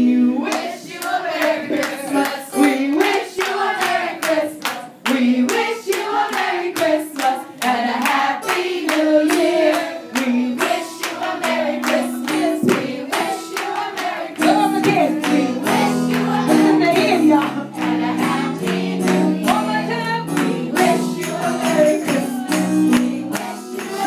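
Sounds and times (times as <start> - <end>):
choir singing: 0.0 - 24.0
hand-clapping in time: 0.4 - 24.0
woman singing into microphone: 1.6 - 24.0.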